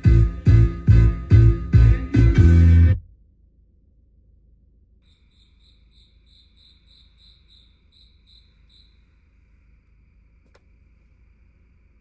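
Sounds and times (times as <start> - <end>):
low steady hum: 0.6 - 12.0
insect chirping: 5.0 - 12.0.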